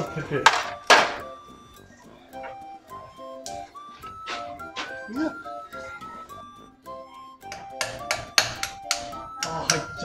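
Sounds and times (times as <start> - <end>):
hand tools tapping on metal: 0.0 - 1.5, 3.4 - 5.2, 7.4 - 10.0
background music: 0.0 - 10.0.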